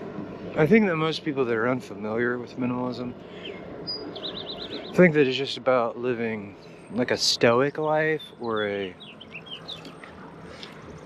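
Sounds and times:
birds chirping: 0.0s - 11.0s
faint steady background noise: 0.0s - 11.0s.

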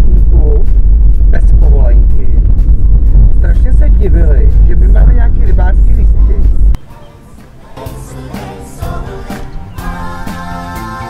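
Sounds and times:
engine and road rumble: 0.0s - 7.7s.

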